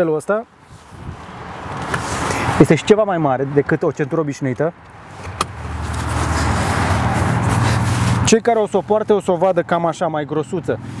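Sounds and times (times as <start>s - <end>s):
motor vehicle rumble and hiss: 0.1s - 11.0s.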